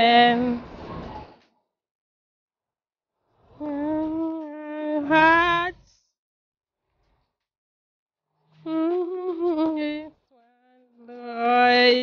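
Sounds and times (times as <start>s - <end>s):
woman humming: 3.6s - 5.2s, 8.6s - 12.0s.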